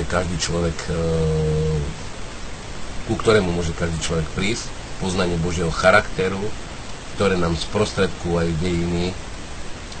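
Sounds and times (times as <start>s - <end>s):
man saying uhm: 0.0s - 2.0s
faint steady hiss: 0.0s - 10.0s.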